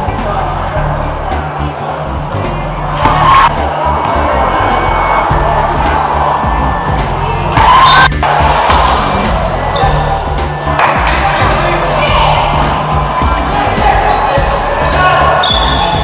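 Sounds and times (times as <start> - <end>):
crowd noise: 0.0 - 16.0
music with bass beat: 0.0 - 16.0
crowd cheering: 1.3 - 16.0.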